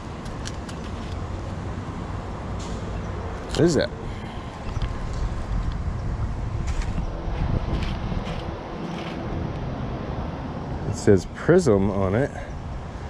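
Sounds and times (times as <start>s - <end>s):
wind buffeting microphone: 3.4s - 13.0s.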